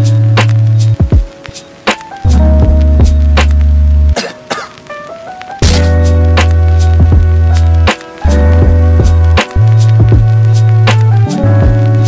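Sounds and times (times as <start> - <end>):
music with heavy bass: 0.0 - 12.0.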